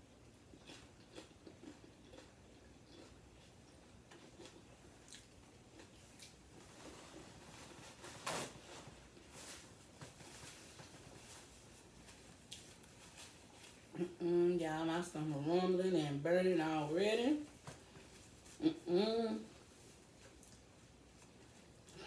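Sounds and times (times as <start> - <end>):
person chewing: 0.1 - 6.6, 10.4 - 14.1.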